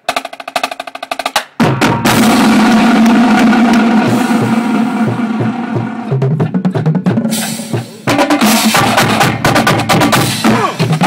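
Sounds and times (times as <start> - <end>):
snare drum roll: 0.1 - 11.0
bass drum beats: 1.5 - 11.0.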